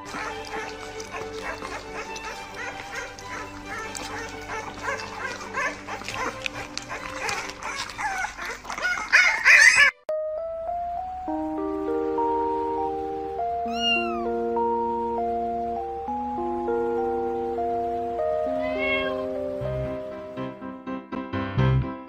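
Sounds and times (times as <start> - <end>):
puppy crying and yipping: 0.0 - 10.1, 13.6 - 14.4
background music: 0.0 - 22.0.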